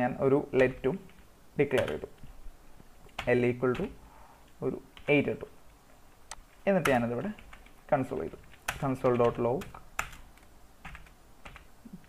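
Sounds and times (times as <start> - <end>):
typing on computer keyboard: 8.4 - 11.7.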